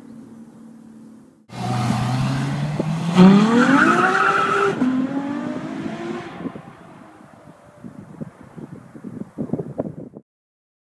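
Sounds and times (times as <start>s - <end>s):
sports car engine accelerating: 1.5s - 7.5s.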